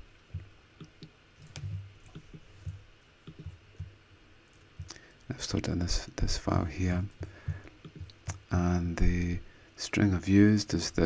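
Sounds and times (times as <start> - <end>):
soft low thumps: 0.2 - 4.0.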